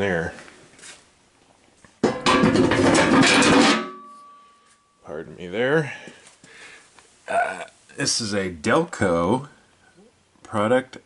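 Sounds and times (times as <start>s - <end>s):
loud metallic clatter: 2.0s - 4.1s
thin ringing tone: 3.9s - 5.2s.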